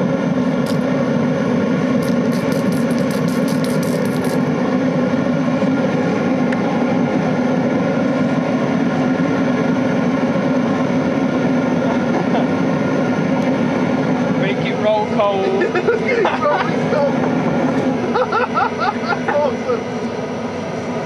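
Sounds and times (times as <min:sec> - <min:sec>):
motor hum: 0:00.0 - 0:21.0
rush of burner flame: 0:00.0 - 0:21.0.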